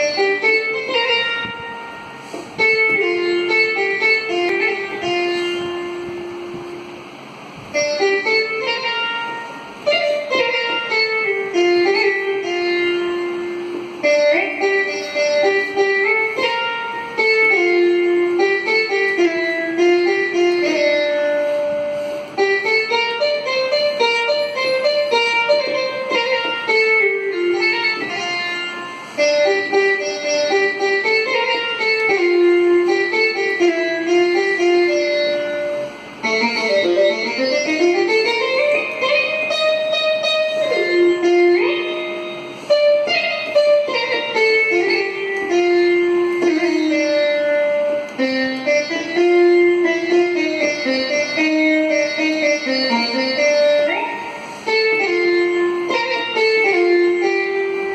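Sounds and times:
plucked veena melody: 0:00.0 - 0:57.9.

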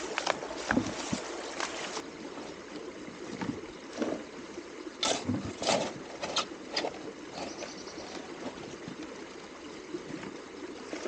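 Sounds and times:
running stream water: 0:00.0 - 0:11.0.

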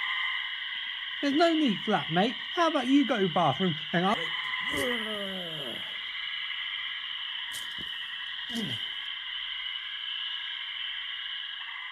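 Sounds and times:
high-pitched whining drone: 0:01.2 - 0:07.0
person groaning: 0:04.2 - 0:06.0, 0:08.5 - 0:08.9
person sighing: 0:04.6 - 0:06.0, 0:08.5 - 0:09.0.

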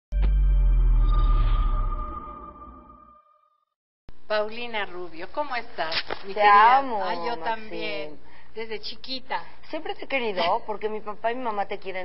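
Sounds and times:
synthesized bass drone: 0:00.1 - 0:03.2.

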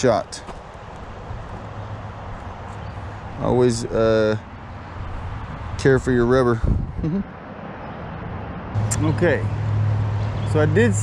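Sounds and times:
person laughing: 0:07.0 - 0:07.3.

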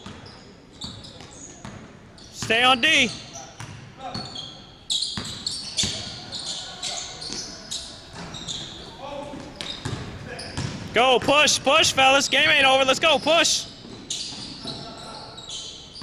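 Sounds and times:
sneakers squeaking: 0:00.0 - 0:16.0.

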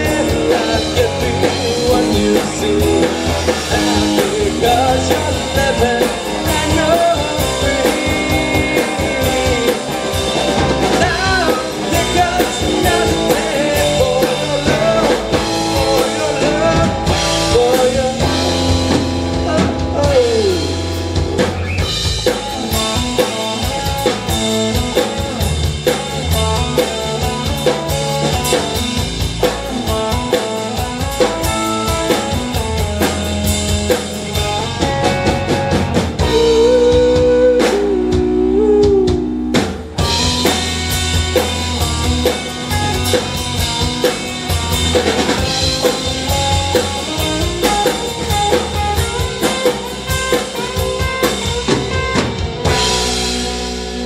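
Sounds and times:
live rock band playing: 0:00.0 - 0:54.0.

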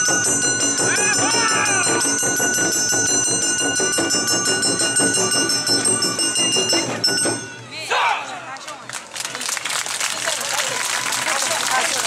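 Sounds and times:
hand-held gong struck rhythmically: 0:00.0 - 0:07.6
drums beating: 0:00.0 - 0:08.0.

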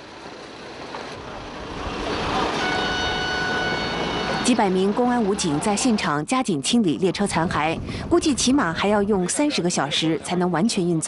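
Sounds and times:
train passing rumble: 0:00.0 - 0:09.3
steady high-pitched tone: 0:02.5 - 0:06.0.

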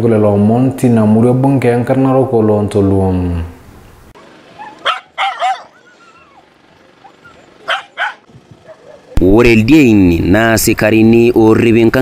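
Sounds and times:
dogs barking: 0:04.5 - 0:09.2.

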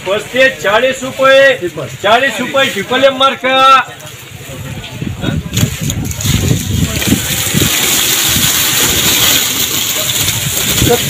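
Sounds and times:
voices: 0:00.0 - 0:11.0
onions rattling and rolling: 0:05.5 - 0:11.0.

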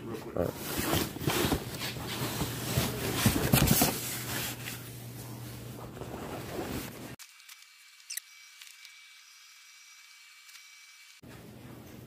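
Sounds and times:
room sound: 0:00.0 - 0:12.0.

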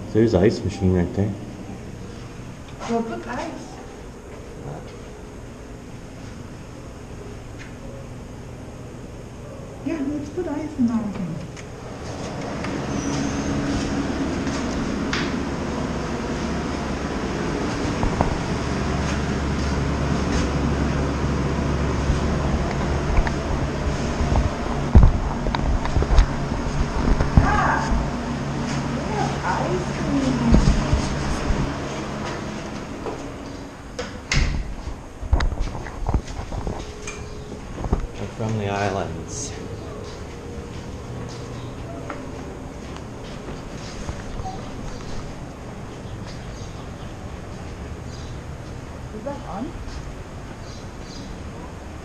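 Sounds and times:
ice machine humming: 0:11.6 - 0:34.0.

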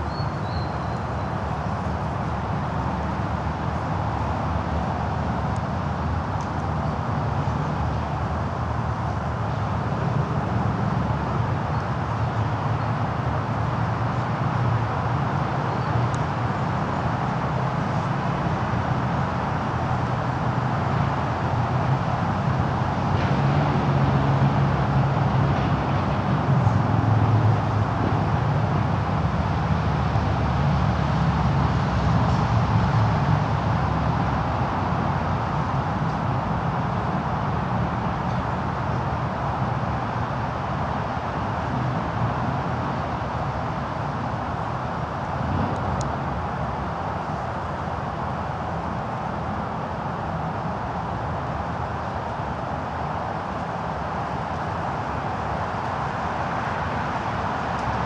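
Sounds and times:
road traffic rumble and hiss: 0:00.0 - 0:58.0.

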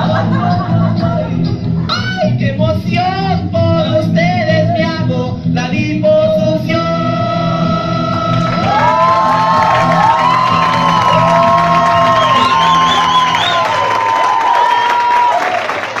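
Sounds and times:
music playing: 0:00.0 - 0:14.2
audience cheering and whooping: 0:08.1 - 0:16.0.

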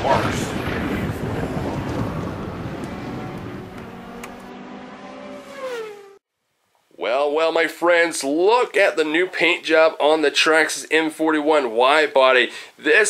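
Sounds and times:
dense wash of noise: 0:00.0 - 0:03.8.

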